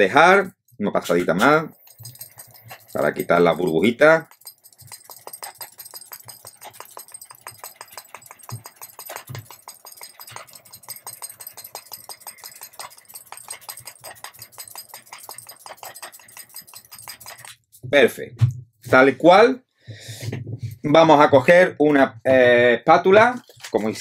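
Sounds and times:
metal bracelets clinking: 0.6s - 17.8s.

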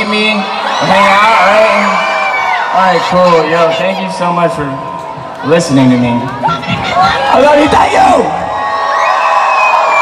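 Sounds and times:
crowd cheering and screaming: 0.0s - 10.0s
long high scream: 8.4s - 10.0s.

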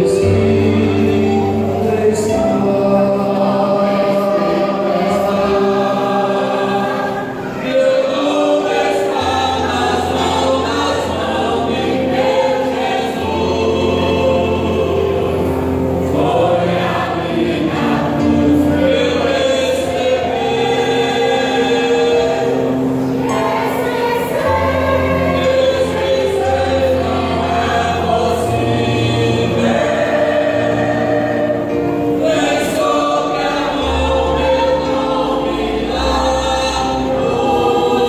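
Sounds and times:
mixed choir singing: 0.0s - 38.0s.

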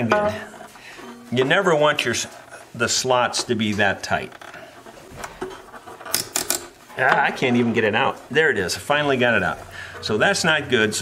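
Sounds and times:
metallic clicks and scrapes: 3.4s - 8.0s.

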